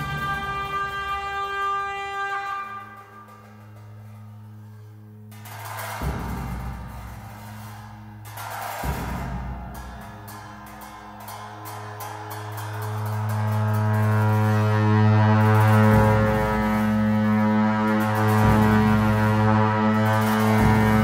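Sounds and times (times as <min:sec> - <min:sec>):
deep sustained drone: 0:00.0 - 0:21.0.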